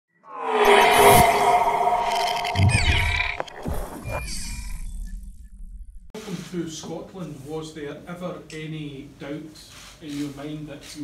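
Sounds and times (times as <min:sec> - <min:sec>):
high falling swishes: 0:00.1 - 0:04.1
held synthetic tone: 0:00.1 - 0:04.3
low hit: 0:00.2 - 0:04.0.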